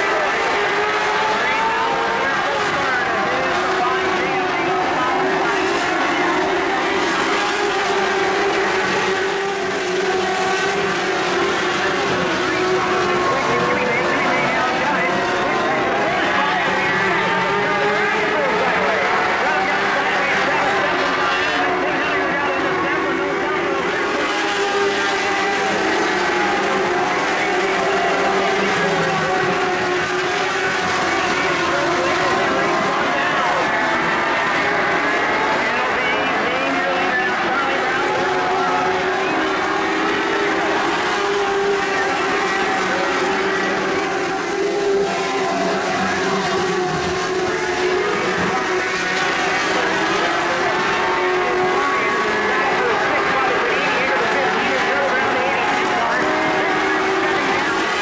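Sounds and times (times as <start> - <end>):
race car engines: 0.0 - 58.0.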